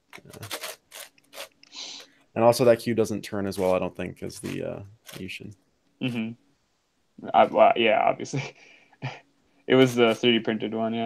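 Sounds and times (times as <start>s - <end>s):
puzzle cube clicking: 0.1s - 2.0s.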